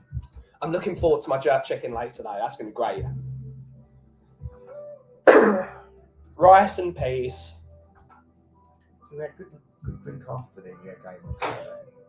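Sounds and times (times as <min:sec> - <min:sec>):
faint background music: 0:00.0 - 0:12.0
man coughing: 0:05.3 - 0:05.8.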